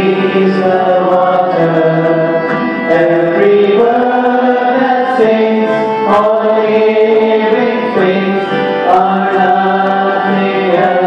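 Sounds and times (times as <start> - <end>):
devotional chanting music: 0.0 - 11.0.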